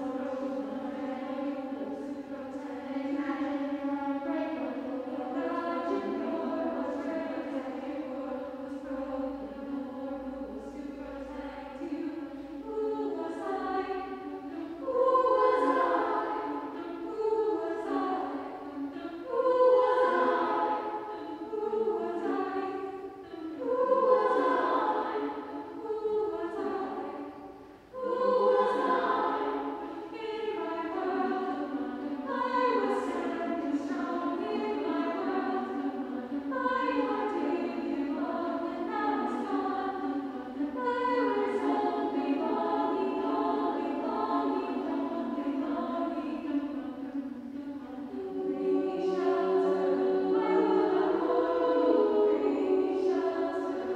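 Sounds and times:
women's choir singing a cappella: 0.0s - 53.9s.

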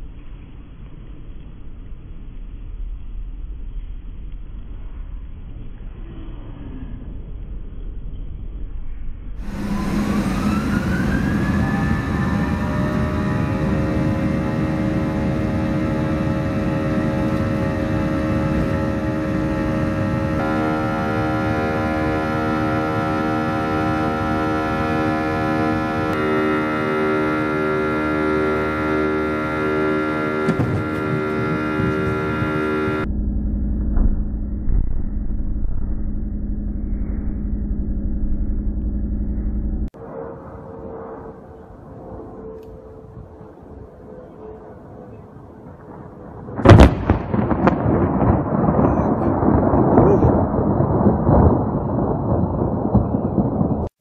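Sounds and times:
jet engines whining and droning: 9.4s - 52.0s
short muffled rumble: 27.6s - 39.9s.

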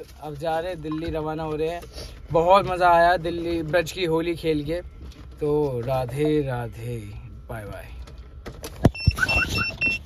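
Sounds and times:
short high electronic beeps: 8.9s - 10.0s.

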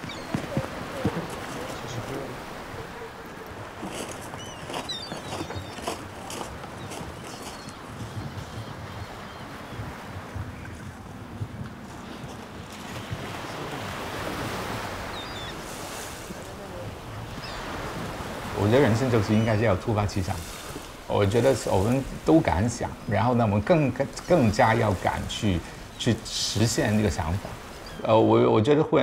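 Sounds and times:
wind buffeting microphone: 0.0s - 28.1s
sea surf: 0.0s - 29.0s.

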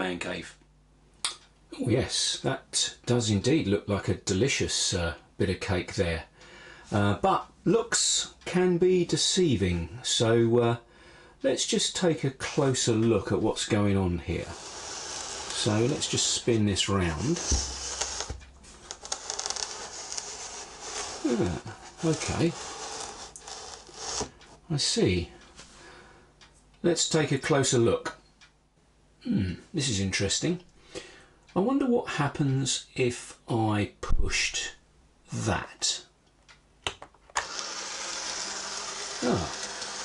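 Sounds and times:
model train motor whirring: 14.4s - 16.5s, 17.2s - 24.3s, 37.4s - 40.0s
fine scratchy ticks: 14.4s - 24.6s
foil board rubbing and scraping: 17.3s - 24.3s.

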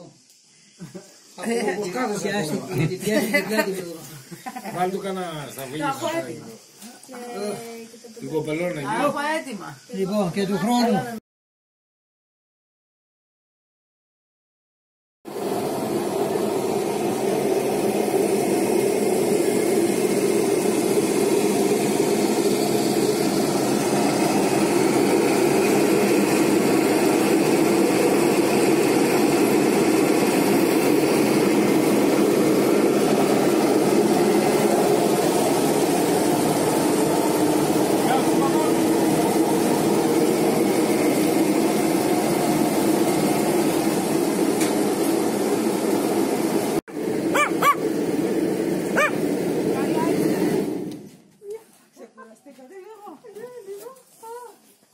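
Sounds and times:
grape crusher machine drone: 15.3s - 51.2s.

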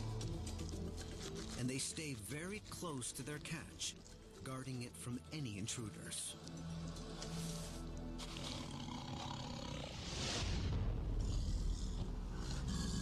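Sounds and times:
documentary music: 0.0s - 13.0s
tiger growling deeply: 6.4s - 13.0s.

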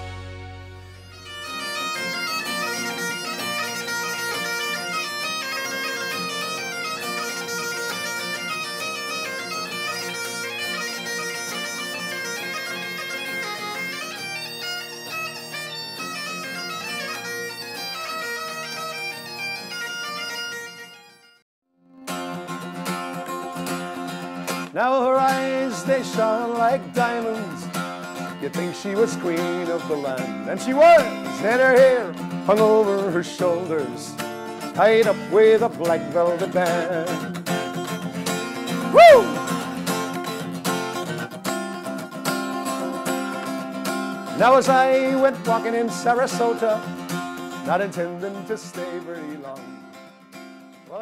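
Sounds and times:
acoustic guitar strumming: 0.0s - 21.4s, 22.0s - 51.0s
bagpipes playing a jig: 0.0s - 21.4s.

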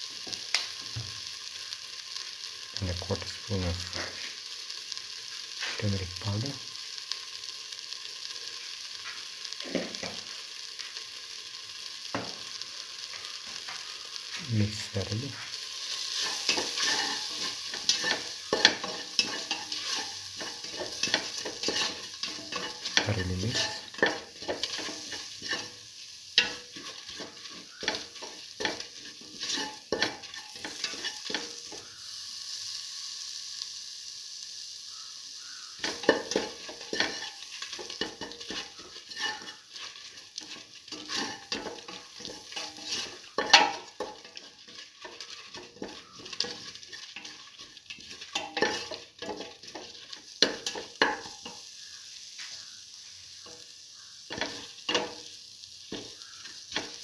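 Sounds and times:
oil sizzling: 0.0s - 57.0s
spoon scraping a metal pan: 15.0s - 25.8s, 26.4s - 31.8s, 35.8s - 51.6s.

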